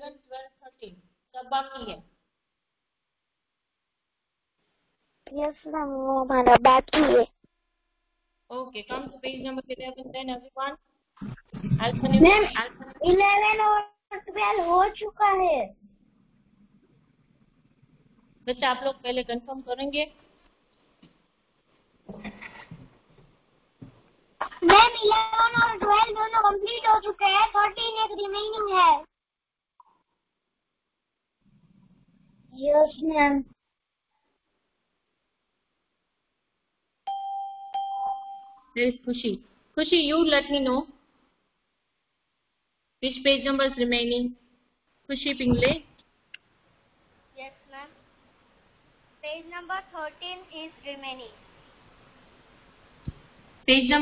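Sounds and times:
electronic chime dings: 37.1 - 38.7
child speaking sing-song: 49.2 - 51.4.

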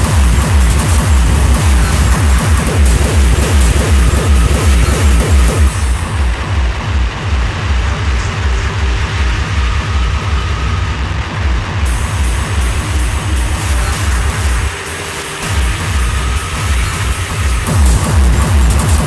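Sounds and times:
pounding kick drum: 0.0 - 14.8, 15.4 - 19.0
hardcore industrial dance music: 0.0 - 19.0.

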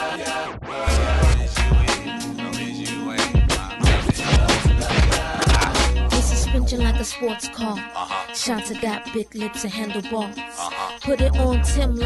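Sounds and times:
hip-hop beat with kick and bass: 0.0 - 8.5
vinyl record scratching: 3.2 - 7.0.

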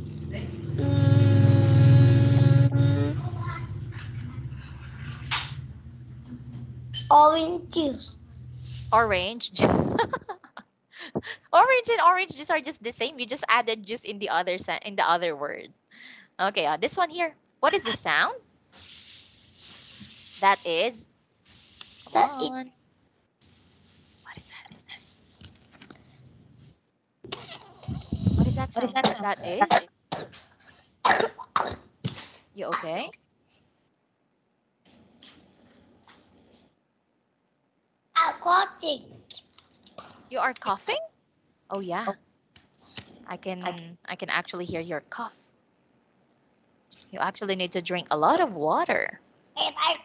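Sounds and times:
call background noise: 0.0 - 22.7, 23.4 - 33.2, 38.2 - 45.5
person humming: 0.8 - 3.4
breathy burst: 15.9 - 16.4
child whispering: 22.1 - 22.7, 27.8 - 29.8
child coughing: 28.8 - 31.8.

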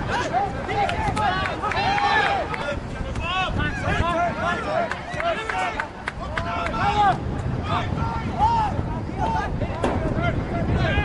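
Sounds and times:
crowd and outdoor noise: 0.0 - 11.0
players shouting calls: 0.0 - 11.0.

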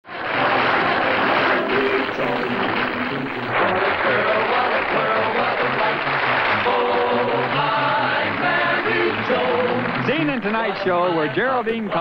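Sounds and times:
audience applauding: 0.1 - 11.6.

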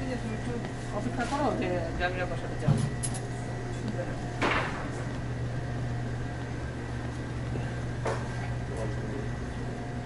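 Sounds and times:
low mains drone: 0.0 - 10.0
refrigeration hum: 0.0 - 10.0.

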